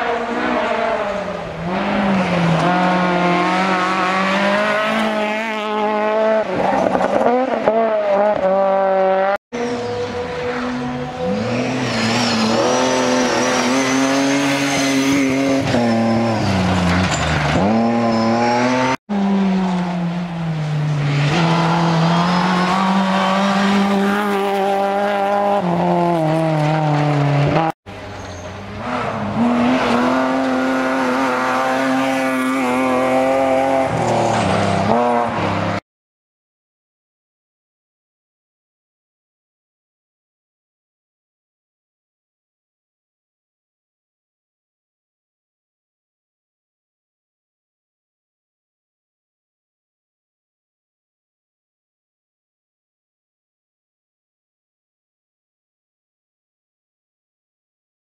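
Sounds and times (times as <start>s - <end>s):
rally cars revving past: 0.0s - 27.8s, 28.7s - 35.8s.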